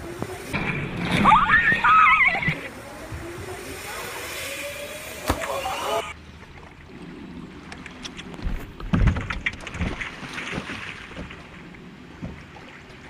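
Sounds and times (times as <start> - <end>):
rushing water spray: 0.0 - 6.2
loud water splash: 0.5 - 2.7.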